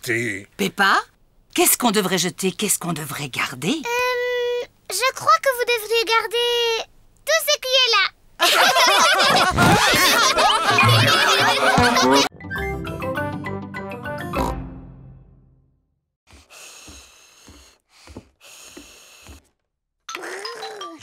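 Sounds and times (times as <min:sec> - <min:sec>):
cartoon characters laughing: 0:08.4 - 0:12.3.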